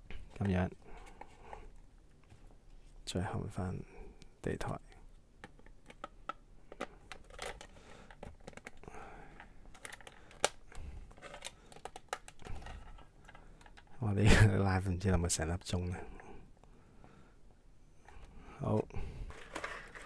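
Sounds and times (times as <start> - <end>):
plastic parts clicking and rattling: 5.4 - 14.0, 19.0 - 20.0.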